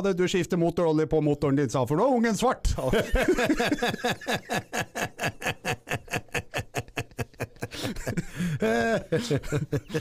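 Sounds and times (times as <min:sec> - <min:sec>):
man laughing hard: 0:02.8 - 0:10.0.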